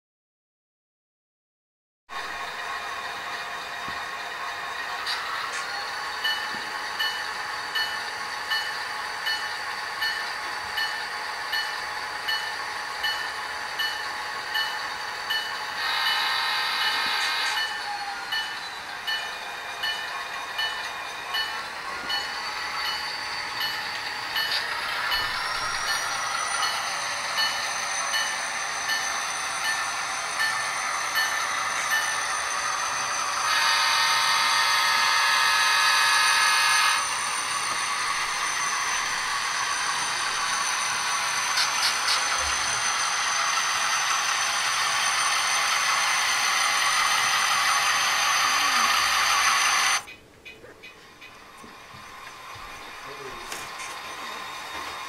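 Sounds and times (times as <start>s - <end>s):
diesel engine sound: 2.2s - 55.0s
locomotive bell ringing: 5.6s - 49.2s.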